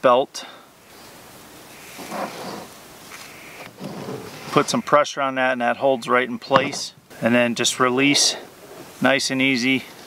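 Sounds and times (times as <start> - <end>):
rope scraping on nylon webbing: 0.9 - 4.8.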